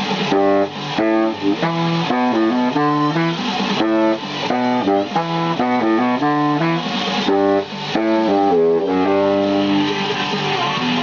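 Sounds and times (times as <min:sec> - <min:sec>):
baritone saxophone playing: 0:00.0 - 0:10.1.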